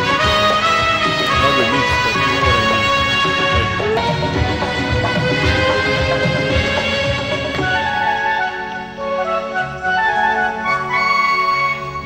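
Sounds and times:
flute melody: 0:00.0 - 0:12.0
keyboard and orchestral backing: 0:00.0 - 0:12.0.

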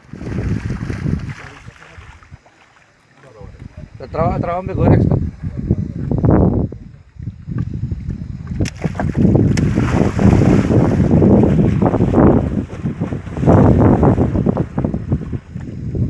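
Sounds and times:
microphone rumbling and rustling: 0:00.0 - 0:02.4, 0:03.5 - 0:16.0.

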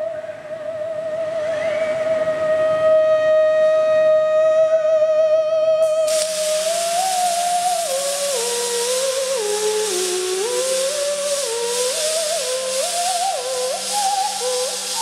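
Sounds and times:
theremin slow melody: 0:00.0 - 0:15.0
welding arcs hissing: 0:05.8 - 0:15.0.

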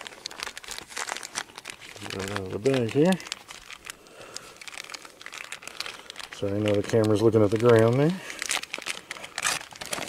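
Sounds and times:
plastic bag crinkling: 0:00.0 - 0:10.0.

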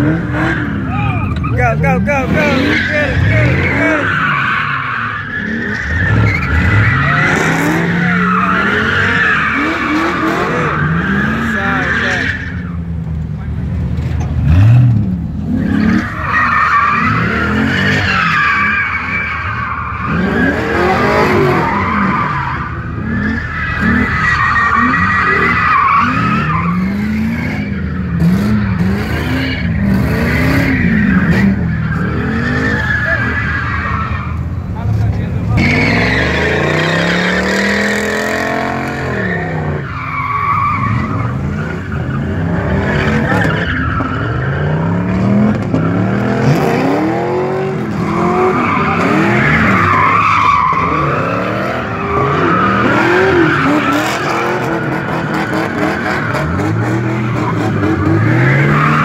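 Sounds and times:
car engine revving: 0:00.0 - 0:59.0
tyres squealing: 0:00.4 - 0:12.8, 0:45.7 - 0:59.0.

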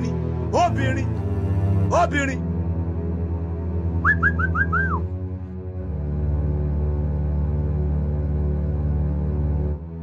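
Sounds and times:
background music with low drone: 0:00.0 - 0:10.0
short whistled notes: 0:04.0 - 0:05.1.

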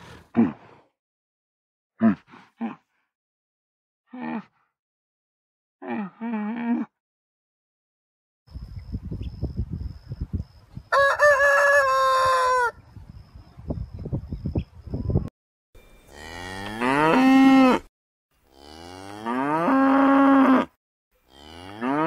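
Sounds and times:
rooster crowing: 0:10.9 - 0:12.8
cattle mooing: 0:16.1 - 0:17.9, 0:18.5 - 0:20.7, 0:21.3 - 0:22.0.

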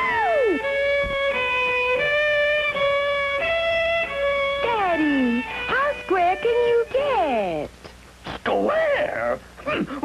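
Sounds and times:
violin sustained notes: 0:00.0 - 0:07.3.

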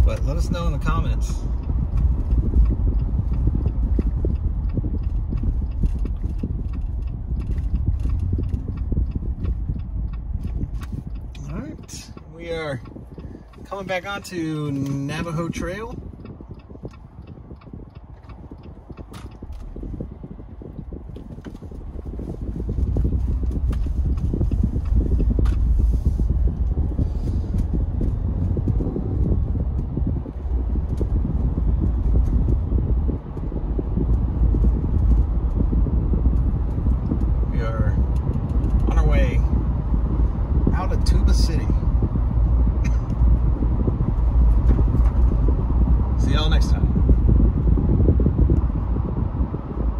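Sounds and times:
car road and wind noise: 0:00.0 - 0:49.9.

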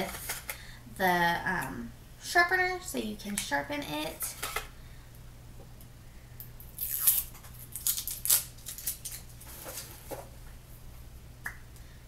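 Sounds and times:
plastic wrapper crinkling: 0:06.8 - 0:09.4.

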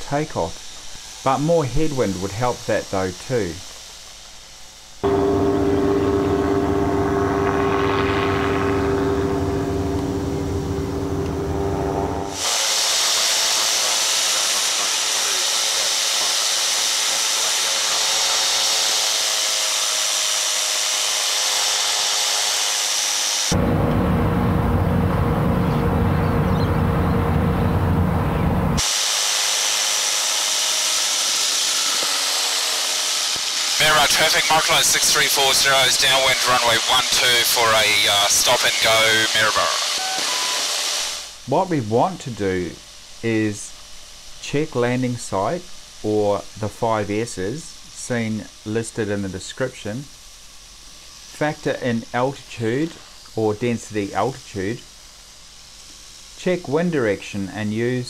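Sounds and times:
high rushing wind: 0:05.0 - 0:12.5
engine and propeller drone: 0:05.0 - 0:12.6, 0:23.1 - 0:28.9.

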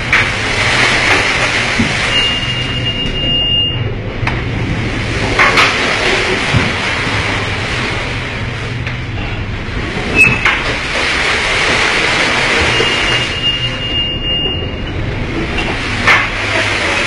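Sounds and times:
heavy sea: 0:00.0 - 0:17.0
low ship hum: 0:00.0 - 0:17.0.

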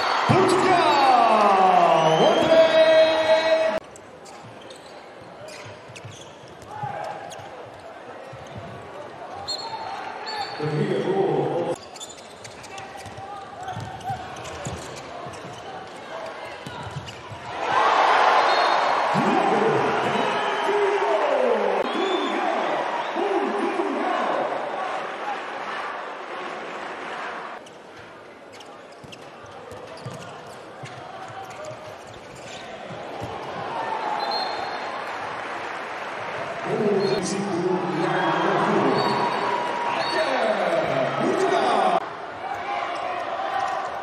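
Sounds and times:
crowd cheering: 0:00.0 - 0:03.8, 0:17.4 - 0:27.6, 0:32.9 - 0:44.0
crowd noise: 0:00.0 - 0:44.0
ball bouncing on court floor: 0:12.4 - 0:15.6, 0:29.0 - 0:33.6.

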